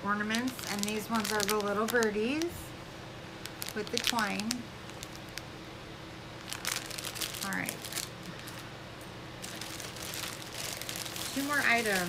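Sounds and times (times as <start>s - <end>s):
plastic packaging crinkling: 0.0s - 2.7s, 3.4s - 5.5s, 6.4s - 8.7s, 9.4s - 12.0s.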